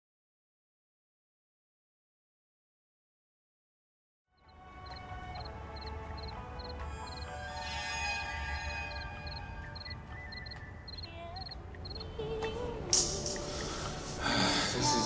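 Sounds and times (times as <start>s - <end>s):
crickets chirping: 4.4s - 12.2s
slow sustained music tones: 4.5s - 15.0s.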